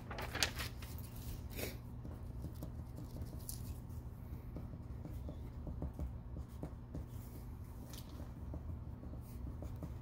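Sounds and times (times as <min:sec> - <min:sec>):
low electrical hum: 0:00.0 - 0:10.0
pencil writing on paper: 0:01.9 - 0:10.0.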